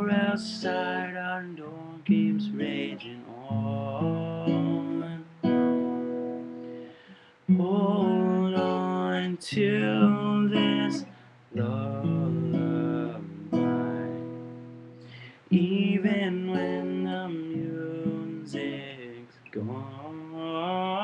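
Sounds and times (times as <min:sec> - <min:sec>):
man singing held notes: 0:00.0 - 0:05.5, 0:07.0 - 0:14.4, 0:15.0 - 0:21.0
acoustic guitar strumming chords: 0:00.0 - 0:21.0.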